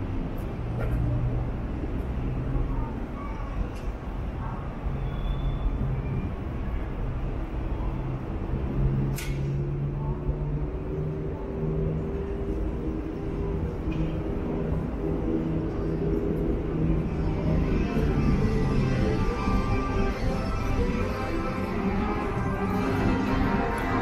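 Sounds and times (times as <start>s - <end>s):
vehicle traffic engine hum: 0.0s - 24.0s.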